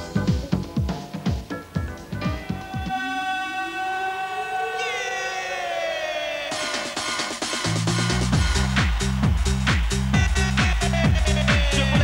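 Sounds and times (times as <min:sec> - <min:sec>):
siren-like synthesizer tones: 0:02.6 - 0:06.6.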